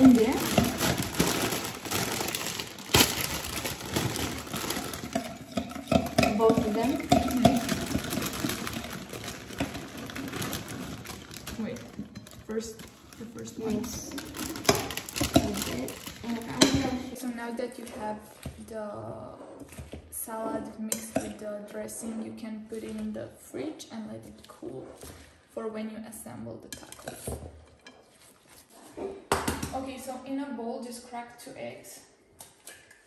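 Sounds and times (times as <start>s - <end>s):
plastic bag crinkling: 0.0s - 17.2s.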